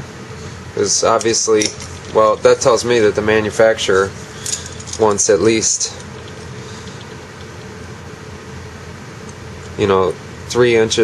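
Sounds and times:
faint constant hum: 0.0s - 11.0s.

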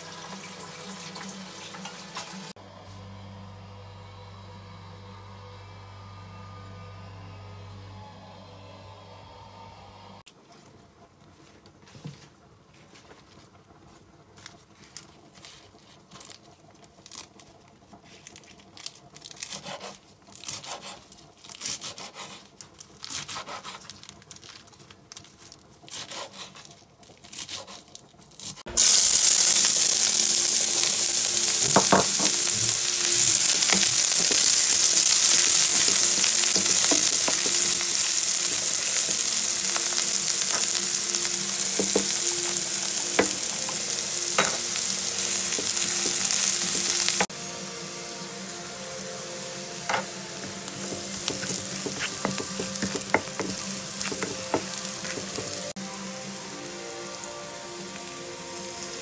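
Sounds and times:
onion and garlic sizzling in oil: 0.0s - 2.6s, 14.9s - 59.0s
wooden spatula scraping a pan: 49.9s - 55.7s.

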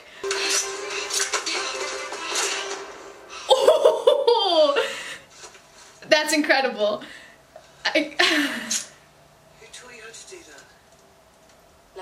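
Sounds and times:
held note background music: 0.2s - 4.2s.

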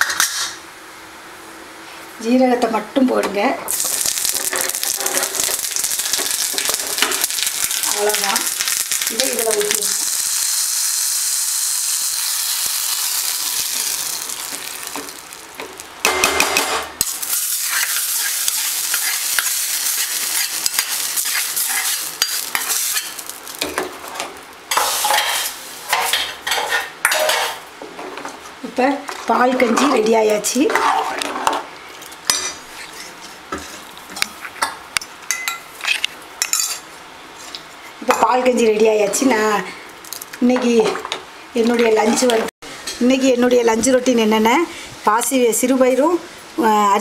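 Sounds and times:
onion frying in hot oil: 3.7s - 27.7s
spoon scraping metal pan: 17.6s - 23.2s, 24.7s - 27.6s.

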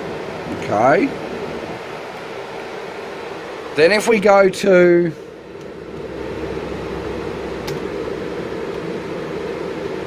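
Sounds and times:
faint hum: 0.0s - 10.0s
fan whirring: 0.0s - 10.0s.

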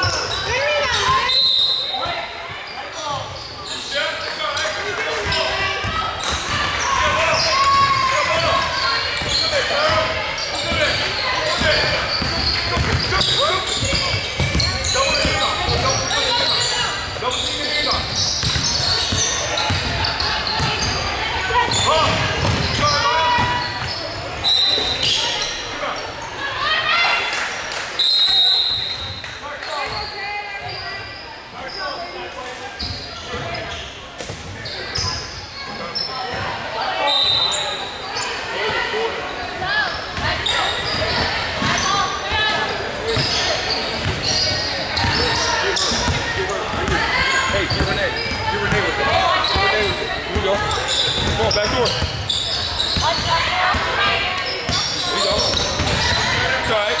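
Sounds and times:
sneaker squeaks: 0.0s - 27.0s, 28.0s - 57.0s
players calling out: 0.0s - 31.0s, 34.6s - 57.0s
basketball bouncing: 11.6s - 16.0s, 18.4s - 21.0s, 22.0s - 23.9s, 44.0s - 44.2s.

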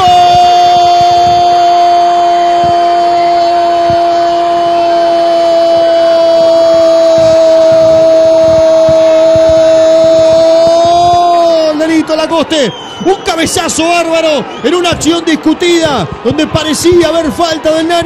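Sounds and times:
man speaking: 11.4s - 18.0s.

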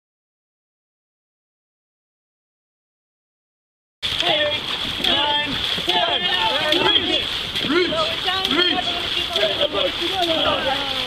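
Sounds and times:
paddles splashing through water: 4.0s - 11.0s
voices calling out: 4.0s - 11.0s.

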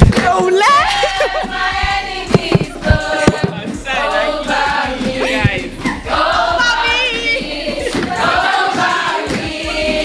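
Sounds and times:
girls singing in chorus: 0.3s - 10.0s.

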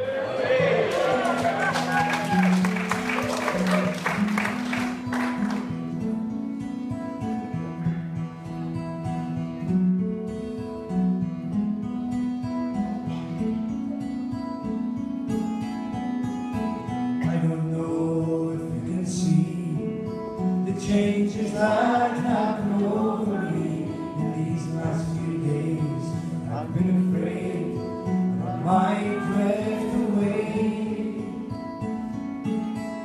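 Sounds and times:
audience applause: 0.0s - 5.8s
acoustic guitar picking: 0.6s - 33.0s
man singing: 17.2s - 31.6s.

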